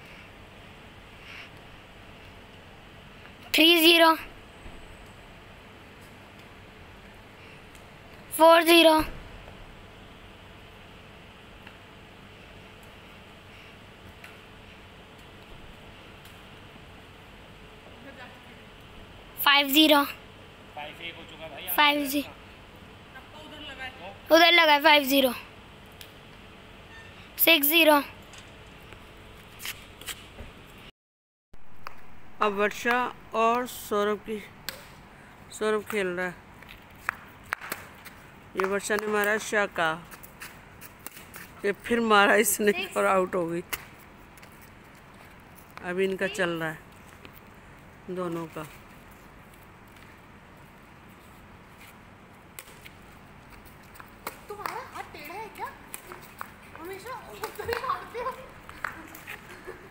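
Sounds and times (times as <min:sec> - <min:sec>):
steady background hum: 0:00.0 - 0:30.9, 0:31.6 - 0:59.9.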